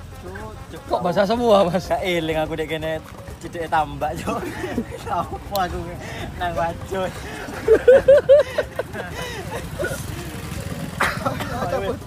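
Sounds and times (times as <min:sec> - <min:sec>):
men laughing and talking: 0:00.1 - 0:12.0.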